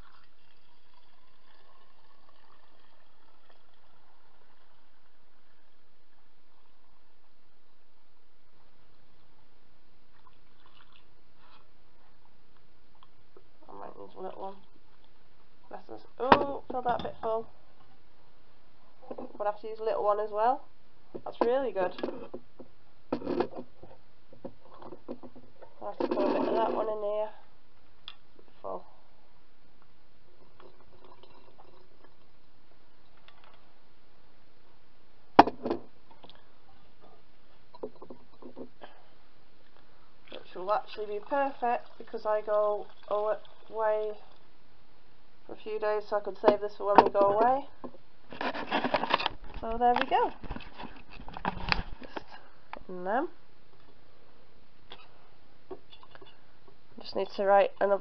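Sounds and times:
steady background hiss: 0.0s - 58.0s
objects tapping and clicking: 37.7s - 38.7s.

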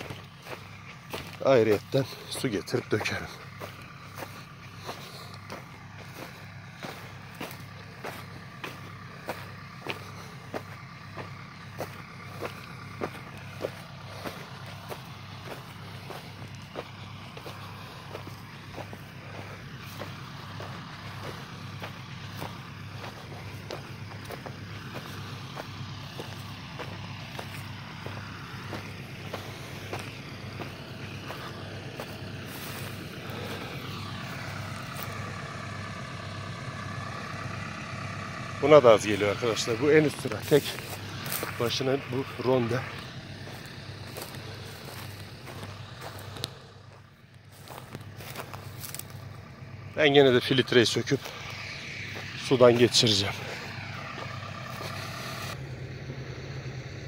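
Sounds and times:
footsteps on gravelly ground: 0.0s - 55.6s
low engine hum: 0.0s - 57.0s.

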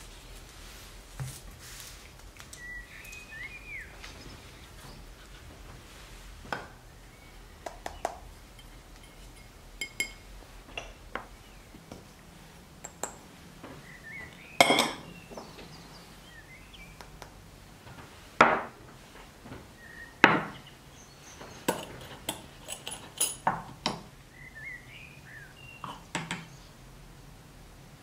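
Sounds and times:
ceramic and metal clinks: 8.6s - 10.2s, 14.6s - 15.1s, 21.7s - 23.6s.

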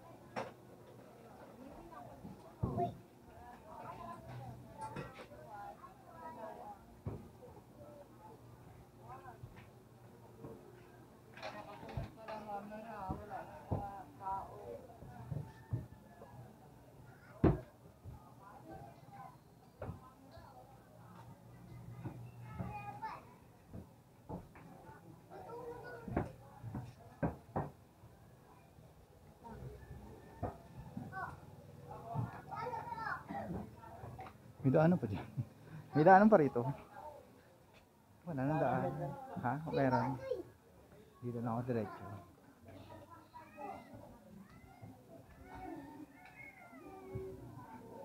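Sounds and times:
children chattering and calling: 0.0s - 34.6s, 35.4s - 48.0s.

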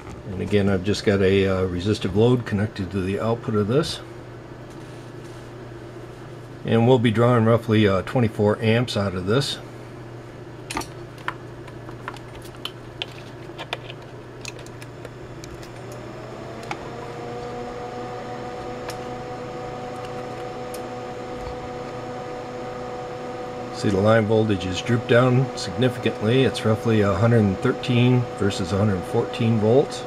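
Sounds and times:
power supply whine: 0.0s - 30.0s
low hum: 14.3s - 30.0s.

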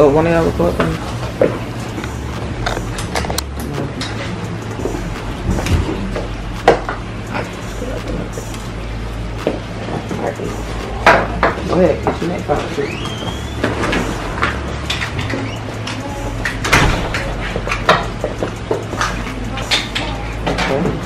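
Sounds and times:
clothes and plastic rustling: 0.0s - 21.0s.

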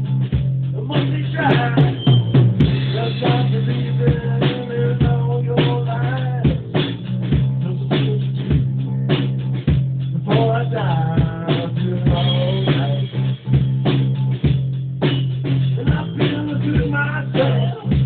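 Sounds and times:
drum kit beat: 0.0s - 18.0s
electric bass: 0.0s - 18.0s.

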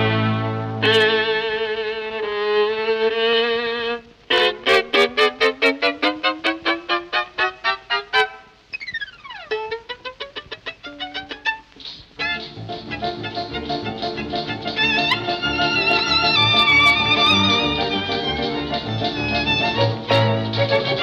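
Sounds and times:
solo violin tune: 0.0s - 21.0s.

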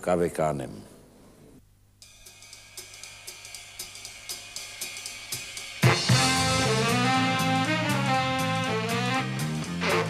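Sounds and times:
ride cymbal beat: 2.0s - 10.0s
big band with saxophones: 5.8s - 10.0s.

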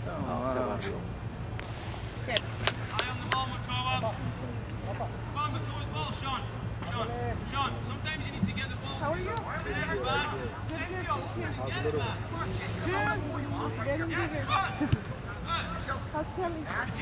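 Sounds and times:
distant voices calling and chattering: 0.0s - 17.0s.

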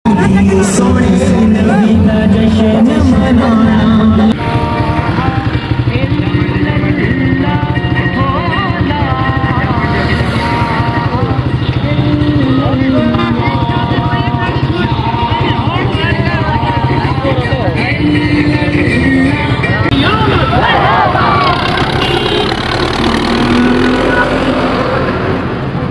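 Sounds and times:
voices chanting: 0.1s - 24.8s
motorcycle engines running: 0.1s - 25.9s.

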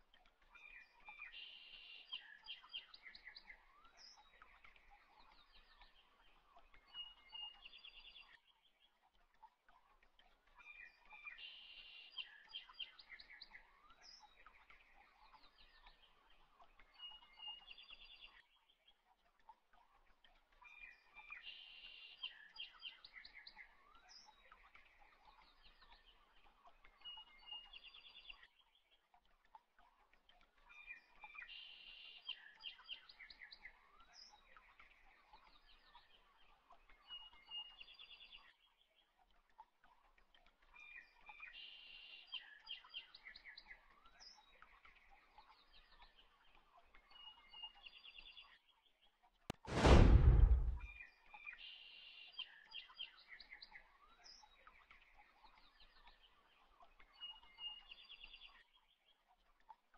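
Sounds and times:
faint bird chirps and trills: 0.0s - 49.3s, 50.8s - 59.9s.

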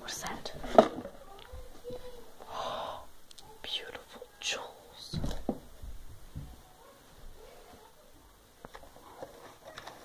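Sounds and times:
person whispering: 0.0s - 0.6s, 2.5s - 5.1s.

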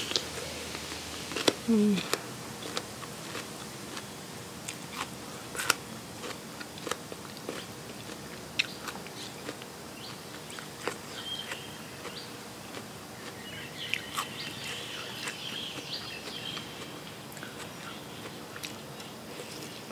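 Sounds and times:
crunchy chewing: 0.0s - 19.9s.

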